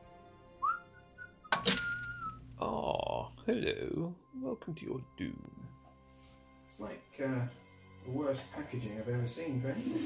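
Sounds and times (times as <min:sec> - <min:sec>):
rising whistle-like tone: 0:00.6 - 0:02.4.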